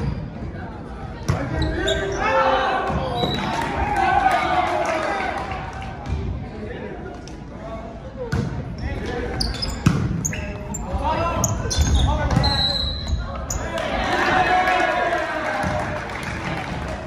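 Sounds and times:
sneakers squeaking on hardwood floor: 8.8s - 13.7s
players shouting: 13.5s - 16.0s.

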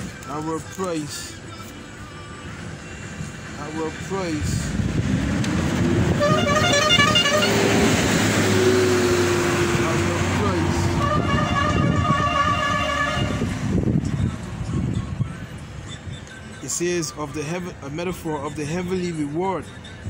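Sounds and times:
vehicle passing by: 3.4s - 14.9s
car horn toots: 6.2s - 7.7s, 11.0s - 13.5s.

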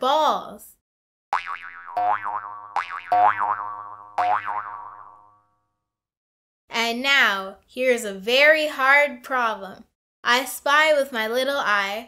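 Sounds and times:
cartoon boing sound effects: 1.4s - 5.6s.

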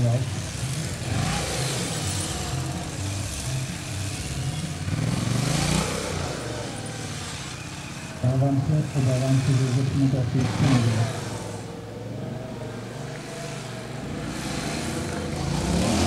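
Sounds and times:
motorcycle engine revving: 0.0s - 16.0s.

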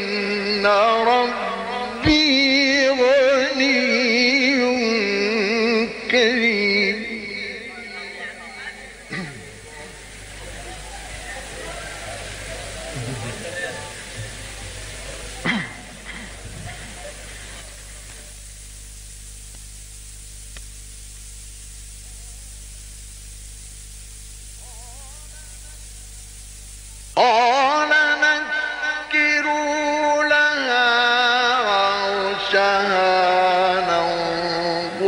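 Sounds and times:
person chanting recitation: 0.0s - 15.4s, 24.6s - 26.2s, 27.2s - 35.0s
old recording hum: 0.0s - 35.0s
audience murmuring and calling out: 7.6s - 18.4s.

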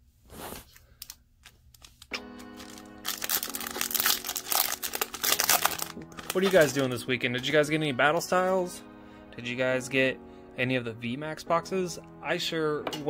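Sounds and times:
foil pack crinkling and tearing: 0.4s - 6.9s
background music: 2.1s - 13.0s.

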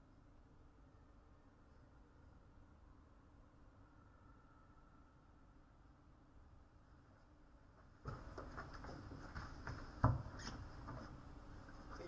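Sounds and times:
small knocks and rustling: 7.8s - 12.0s.

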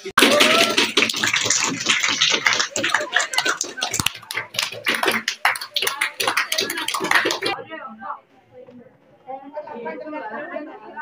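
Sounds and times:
crowd clapping: 0.0s - 7.6s
people talking: 2.6s - 11.0s.

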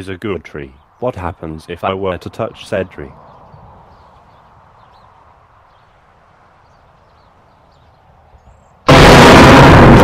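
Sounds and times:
loud distorted blast: 8.9s - 10.0s.

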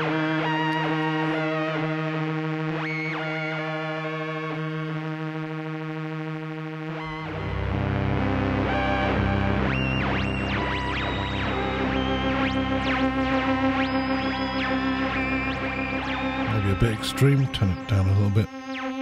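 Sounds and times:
analog synthesizer chords: 0.0s - 19.0s.

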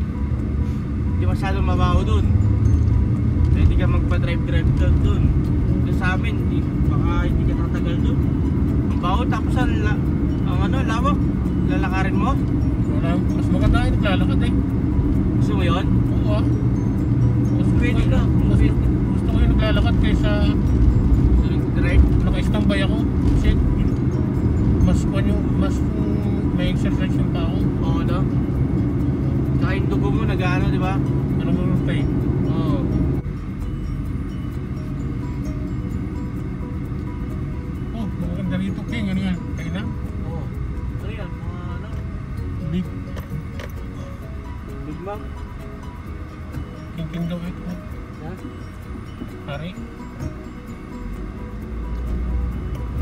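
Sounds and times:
car road and engine noise: 0.0s - 53.0s.

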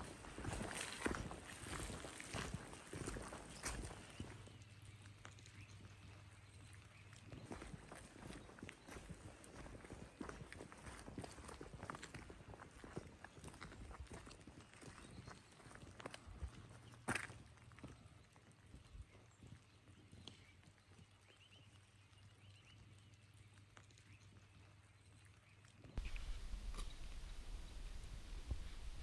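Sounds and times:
footsteps on leafy asphalt: 0.0s - 5.8s, 26.0s - 29.0s.

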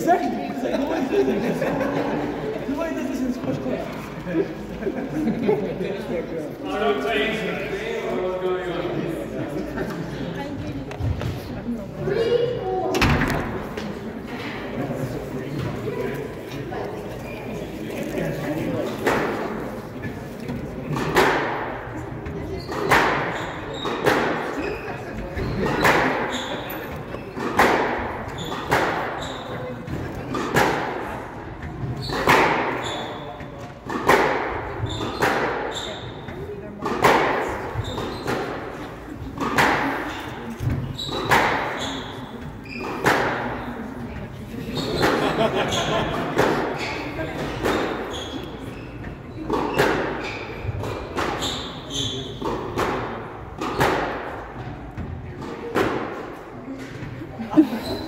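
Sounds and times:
squash ball hitting rackets and walls: 18.8s - 44.0s, 44.7s - 57.2s
sneakers squeaking on wooden floor: 22.2s - 58.0s.

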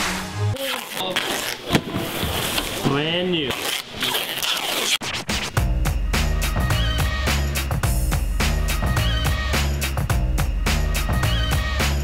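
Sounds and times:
turntable scratching: 0.6s - 5.6s
hip-hop beat: 5.0s - 12.0s.

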